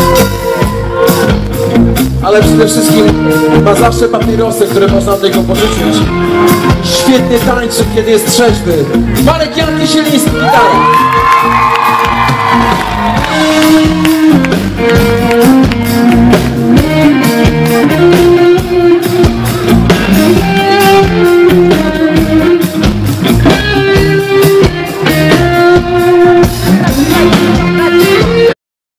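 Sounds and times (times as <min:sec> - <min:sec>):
steady drum beat: 0:00.0 - 0:28.5
electric guitar melody: 0:00.0 - 0:28.6.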